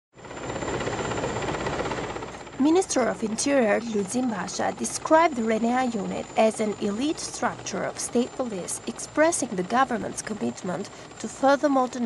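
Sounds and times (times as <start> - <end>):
helicopter flying overhead: 0.2 - 12.0.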